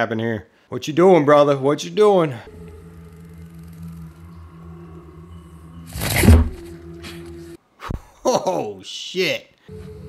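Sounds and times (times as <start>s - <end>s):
low ambient score drone: 2.4s - 7.6s, 9.7s - 10.0s.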